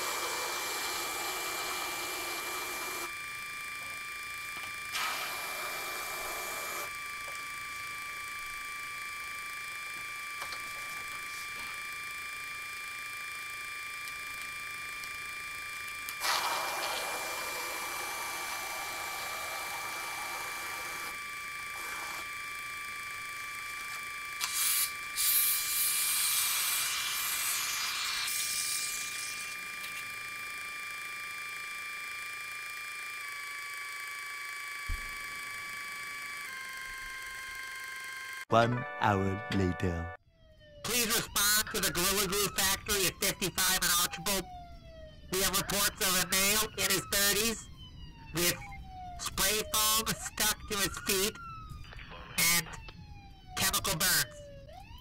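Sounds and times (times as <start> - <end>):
aerosol spray can hissing: 24.4 - 28.8.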